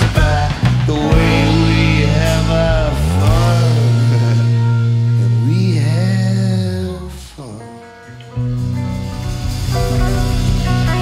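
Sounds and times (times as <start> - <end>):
bending melody line: 0.0 - 7.1, 8.1 - 11.0
live rock band music: 0.0 - 11.0.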